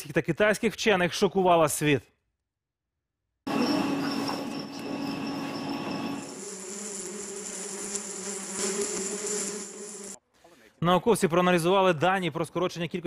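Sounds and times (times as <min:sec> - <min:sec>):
insects buzzing: 0:03.5 - 0:10.2.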